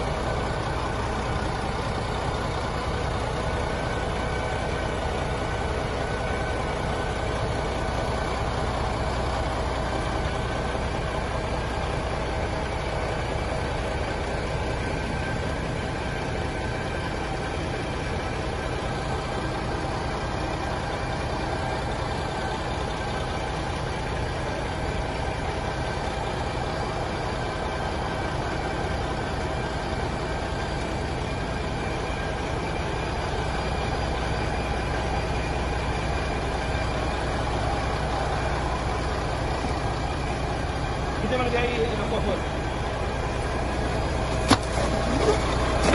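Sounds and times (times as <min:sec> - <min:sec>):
truck diesel engine idling: 0:00.0 - 0:45.9.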